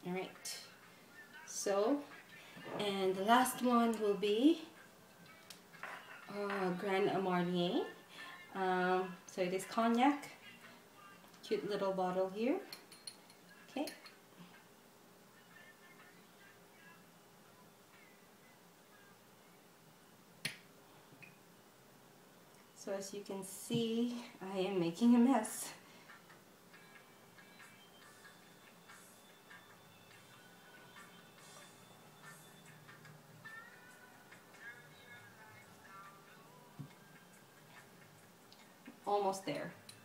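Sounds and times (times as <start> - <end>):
glass bottle tapping metal spoon: 12.7 - 14.1.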